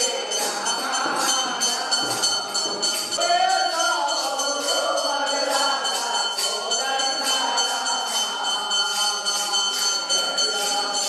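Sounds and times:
bells ringing rapidly: 0.0 - 11.0.

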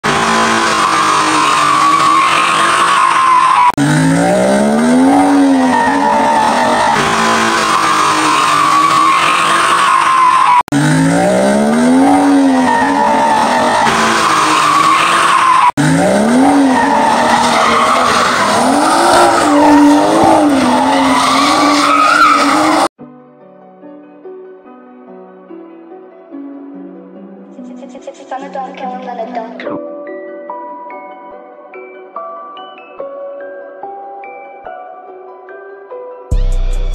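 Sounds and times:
car engines revving: 0.0 - 23.0
tyres squealing: 0.4 - 22.9.

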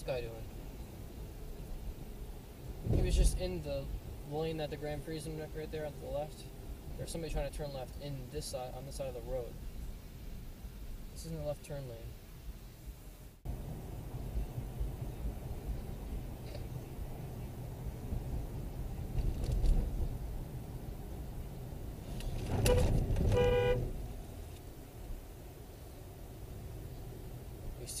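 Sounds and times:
road noise inside moving car: 0.0 - 28.0
car horn honking: 22.5 - 24.1.

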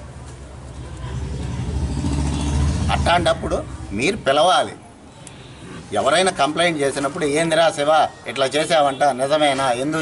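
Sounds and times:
passing vehicle engine rumble: 0.0 - 4.4.

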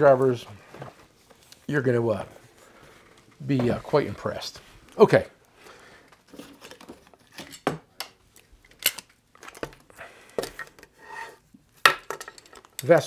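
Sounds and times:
screwdrivers clinking and knocking: 11.9 - 13.0.

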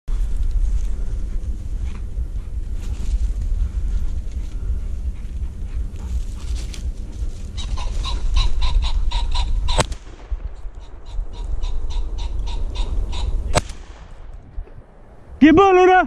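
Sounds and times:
pheasant cackling: 3.6 - 13.7
shotgun firing: 9.7 - 10.7, 13.5 - 14.4.

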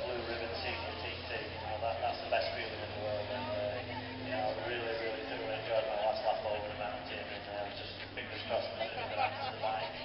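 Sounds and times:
faint drone: 0.0 - 10.0
man talking over loudspeaker: 0.0 - 10.0.

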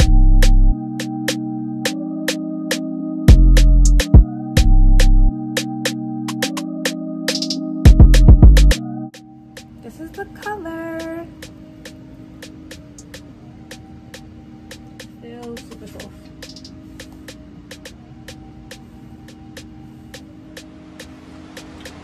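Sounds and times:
soft background music: 0.0 - 22.0.

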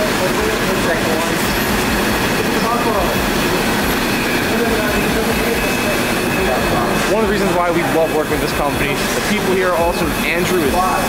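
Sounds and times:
roller conveyor running: 0.0 - 11.0.

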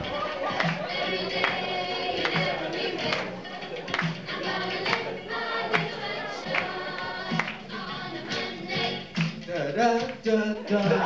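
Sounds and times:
group singing over a beat: 0.0 - 11.0.

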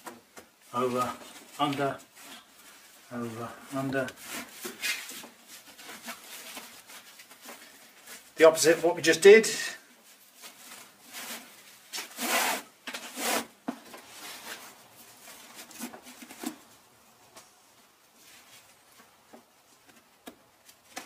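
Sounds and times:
fabric webbing rubbing swishes: 10.2 - 13.5.

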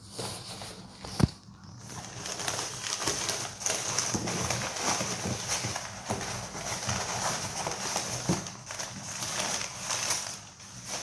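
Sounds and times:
packing paper rustling: 0.0 - 11.0.

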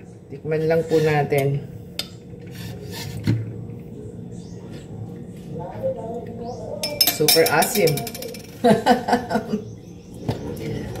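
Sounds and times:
light glass clink: 6.8 - 8.4
person laughing: 8.6 - 9.7.

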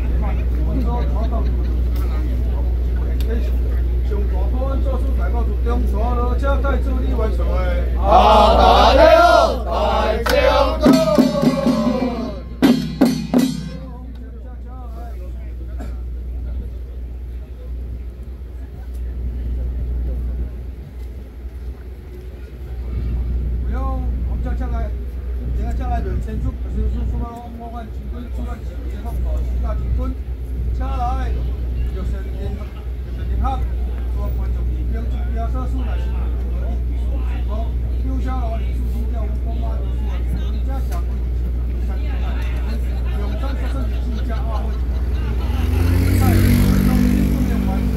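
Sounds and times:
people talking: 0.0 - 12.7, 13.7 - 20.8, 22.2 - 47.9
steady low rumble: 0.0 - 34.2.

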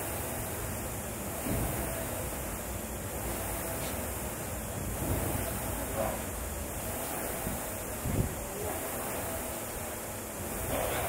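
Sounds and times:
flywheel fan whooshing: 0.0 - 11.0.

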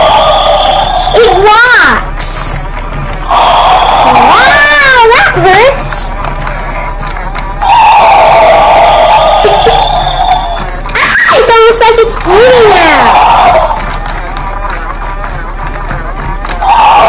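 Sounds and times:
toy dinosaur electronic roar: 0.0 - 1.4, 3.2 - 6.0, 7.6 - 11.4, 16.6 - 17.0
wavering electronic cry: 0.0 - 17.0.

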